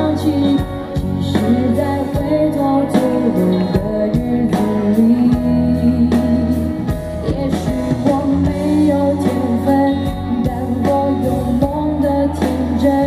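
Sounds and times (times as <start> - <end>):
live rock band playing: 0.0 - 13.0
woman singing: 0.0 - 13.0.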